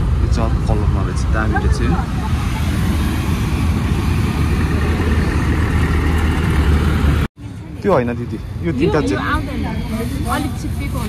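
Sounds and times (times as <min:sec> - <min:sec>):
loud outdoor rumble: 0:00.0 - 0:11.0.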